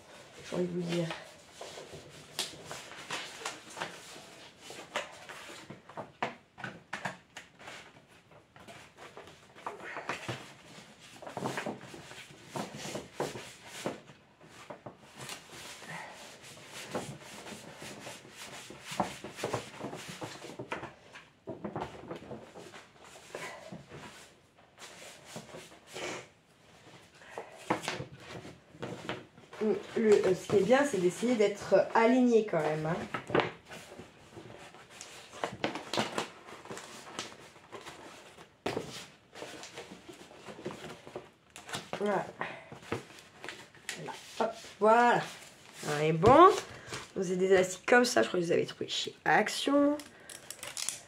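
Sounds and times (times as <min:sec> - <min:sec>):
paper rustling and crackling: 0:00.1 - 0:25.9, 0:26.7 - 0:47.3, 0:49.8 - 0:51.0.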